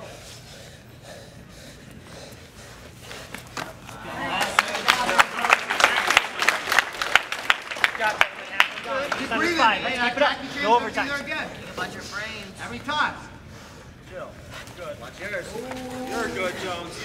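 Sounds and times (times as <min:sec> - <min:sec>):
room murmur: 0:00.0 - 0:17.0
spectators clapping: 0:04.0 - 0:09.5
people calling out: 0:15.4 - 0:17.0.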